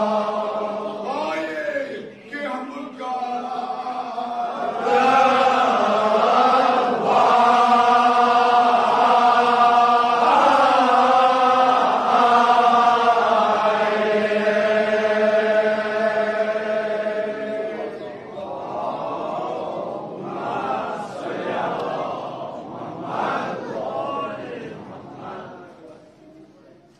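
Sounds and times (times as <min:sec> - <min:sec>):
men chanting in long notes: 0:00.0 - 0:02.2, 0:02.8 - 0:25.8.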